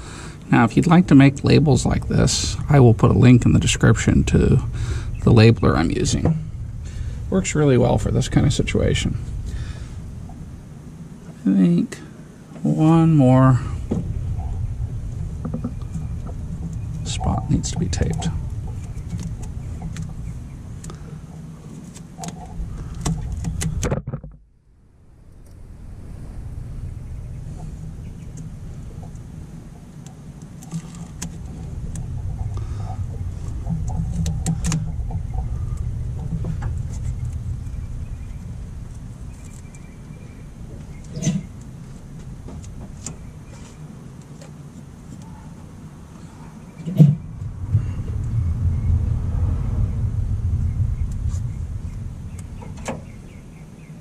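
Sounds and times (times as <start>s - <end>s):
tape and wires crackling: 0.0s - 24.4s, 25.2s - 54.0s
steady low rumble: 0.0s - 54.0s.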